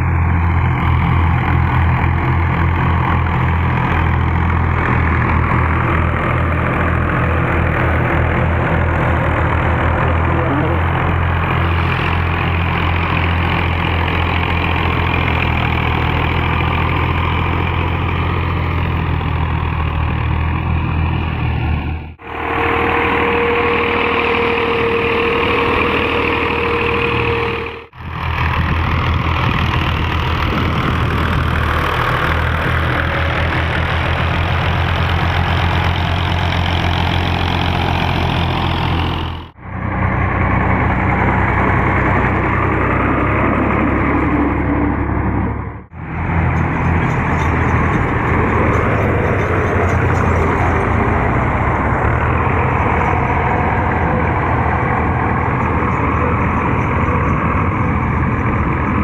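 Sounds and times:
diesel tractor engines running: 0:00.0 - 0:59.0
steady whine: 0:22.0 - 0:59.0.

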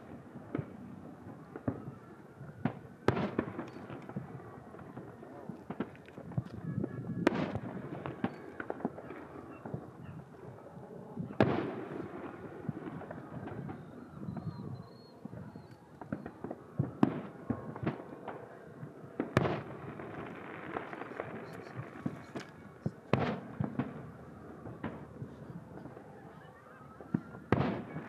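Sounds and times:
fireworks booming: 0:00.0 - 0:28.0.

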